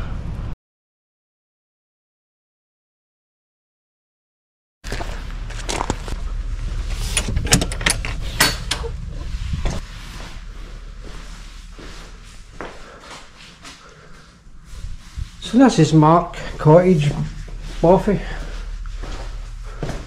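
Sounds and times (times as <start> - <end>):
low rumble: 0.0 - 0.6, 4.9 - 20.0
footsteps on stony path: 4.8 - 7.1, 9.7 - 13.9, 16.3 - 20.0.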